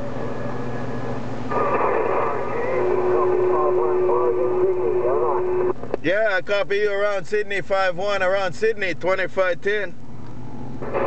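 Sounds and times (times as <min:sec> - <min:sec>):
low hum: 0:00.0 - 0:06.0, 0:06.8 - 0:11.0
garbled radio voice: 0:01.5 - 0:05.7
radio static hiss: 0:01.5 - 0:06.0, 0:10.8 - 0:11.0.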